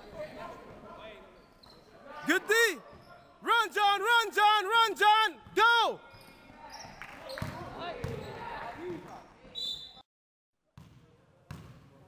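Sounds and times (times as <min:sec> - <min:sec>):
basketball bouncing on wooden court: 0:07.4 - 0:08.3, 0:10.8 - 0:11.9.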